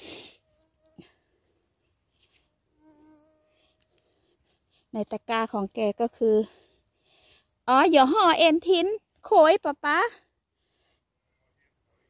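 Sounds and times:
flying insect buzzing: 2.8s - 3.8s.

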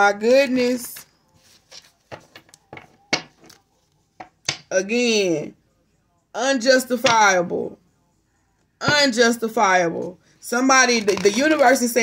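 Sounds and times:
playing cards clicking and tapping: 1.7s - 3.6s, 4.2s - 4.7s.

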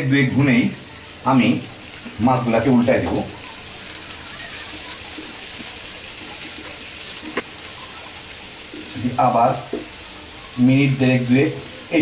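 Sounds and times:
fish sizzling in hot oil: 0.0s - 12.0s
spatula scraping pan: 3.6s - 9.0s.

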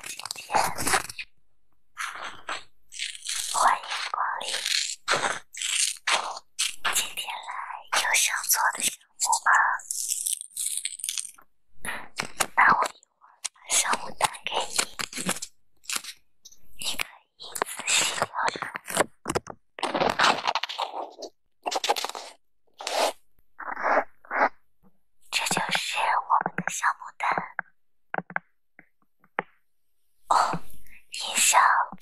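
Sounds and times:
sticker crinkling: 0.0s - 1.3s, 2.0s - 7.4s, 13.6s - 16.2s.

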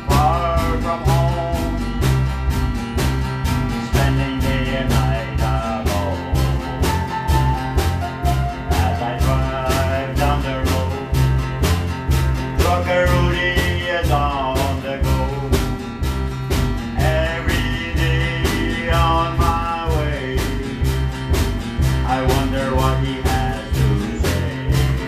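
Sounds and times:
person singing: 0.0s - 1.9s, 3.8s - 7.0s, 8.2s - 11.2s, 12.6s - 15.7s, 17.0s - 20.8s, 22.0s - 25.0s
acoustic guitar: 0.0s - 25.0s
drum kit beat: 0.0s - 25.0s
electric bass: 0.0s - 25.0s.

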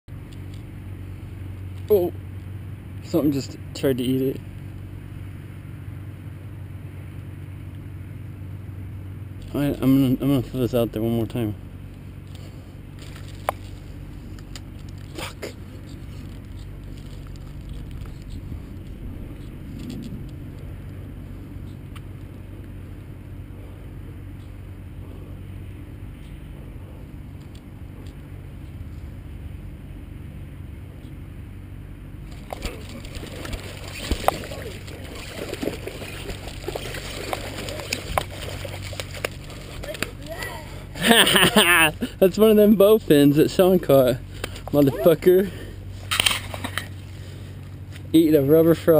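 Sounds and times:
low background hum: 0.1s - 48.9s
fish splashing in water: 32.3s - 40.2s.

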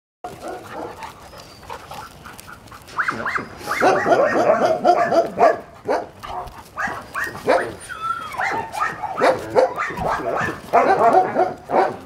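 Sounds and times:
dogs play-wrestling vocalizing: 0.3s - 12.0s.

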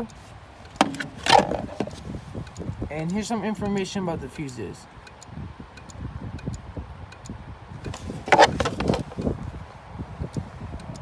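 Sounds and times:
plastic scraping rub: 0.8s - 2.0s, 7.9s - 9.2s.

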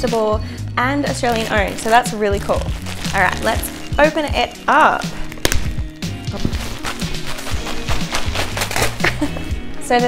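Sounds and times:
background music: 0.0s - 10.0s
plastic mailer bag tearing open: 1.3s - 9.4s.

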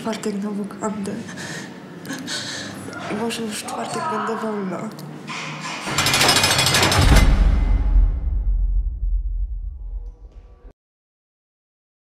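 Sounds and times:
loud harsh rapid rattling: 5.6s - 8.4s.

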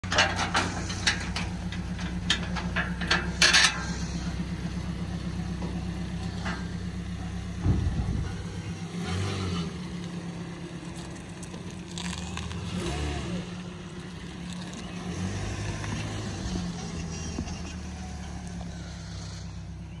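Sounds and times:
car engine running: 0.0s - 20.0s.

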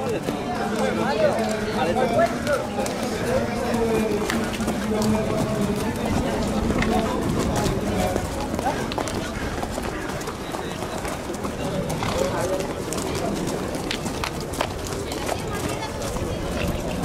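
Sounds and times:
hooves clip-clopping on pavement: 0.0s - 17.0s
people chattering: 0.0s - 17.0s.

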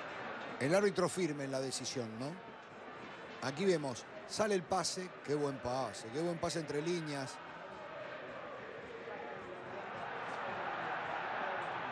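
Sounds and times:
stadium crowd roar: 0.0s - 11.9s.

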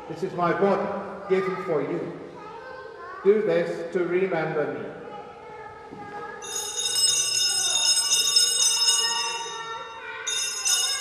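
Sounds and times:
altar bells jingling: 6.4s - 11.0s.

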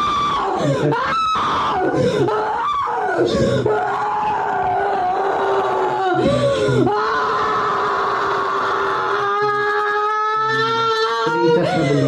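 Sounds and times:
woman screaming and groaning: 0.0s - 12.0s.

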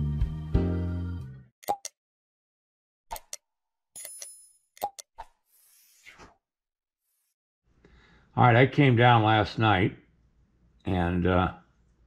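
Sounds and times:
short pops and clicks: 1.6s - 2.0s, 3.1s - 5.4s.

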